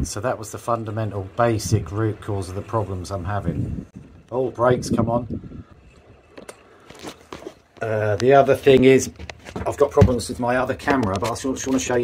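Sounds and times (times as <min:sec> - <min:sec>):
camera handling clicks and rustles: 0:06.3 - 0:07.8.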